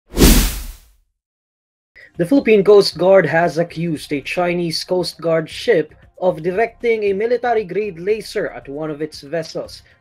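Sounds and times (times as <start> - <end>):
whoosh with deep boom: 0.1 - 0.8.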